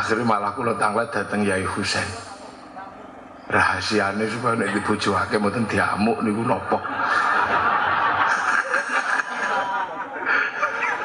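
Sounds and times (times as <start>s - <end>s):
audience laughing: 4.3s - 11.0s.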